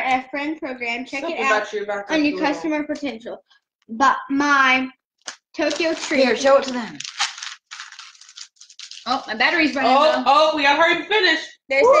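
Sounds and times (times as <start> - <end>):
cardboard card rustling and scraping: 5.6 - 9.8.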